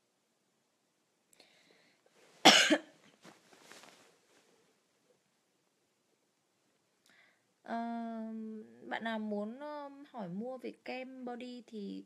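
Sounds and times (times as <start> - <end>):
woman coughing: 2.4 - 2.9.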